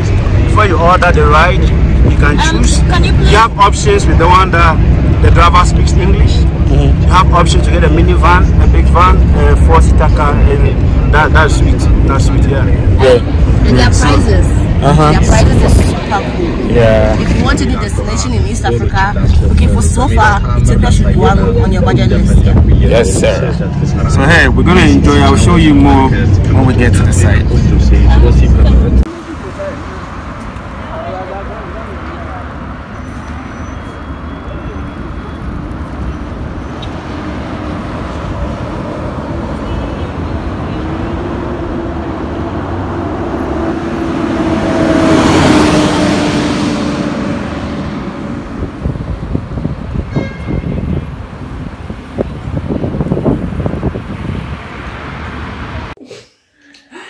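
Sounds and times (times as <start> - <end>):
vehicle passing close: 0.0 - 50.1
passing cars: 0.0 - 56.0.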